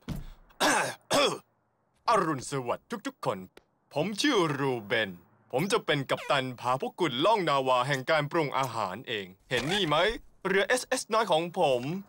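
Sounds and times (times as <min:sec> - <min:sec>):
cartoon voice clearing throat: 0:06.1 - 0:06.4.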